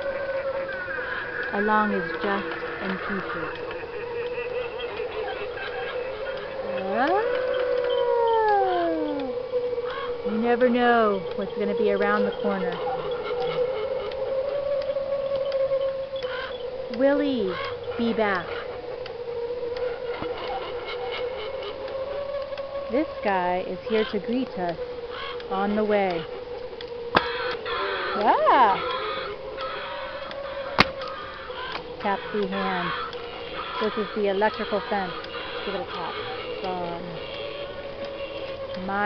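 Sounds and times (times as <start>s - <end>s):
faint ticks: 0.0s - 20.6s, 21.2s - 39.0s
wolf howl: 0.0s - 26.6s, 27.2s - 39.0s
steady droning tone: 0.0s - 39.0s
steady wavering hum: 0.0s - 39.0s.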